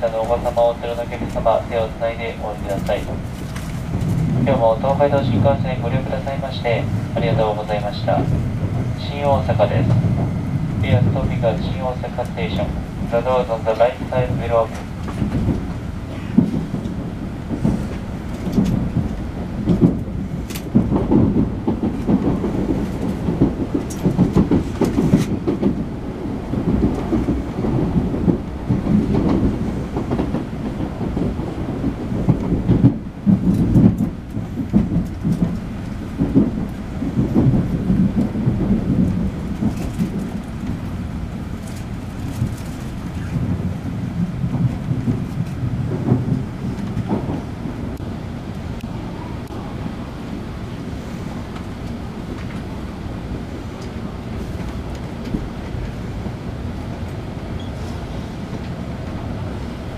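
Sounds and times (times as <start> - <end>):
track clacks: 0.0 - 59.9
train interior rumble: 0.0 - 59.9.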